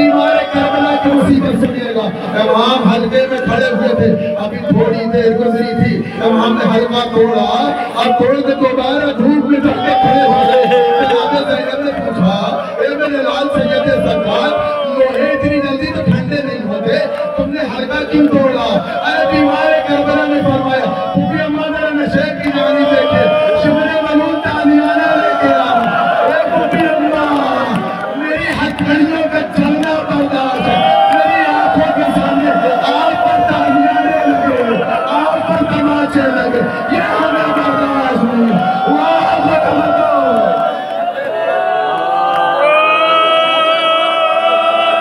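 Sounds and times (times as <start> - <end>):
man chanting through microphones: 0.0 - 40.7
voices of a gathering: 0.0 - 45.0
men wailing and weeping: 9.4 - 15.8.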